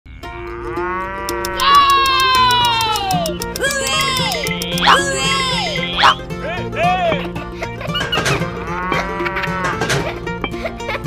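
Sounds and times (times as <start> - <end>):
cow mooing: 0.1 - 1.8, 3.6 - 6.2, 8.7 - 9.8
light music with ticking beat: 1.2 - 11.0.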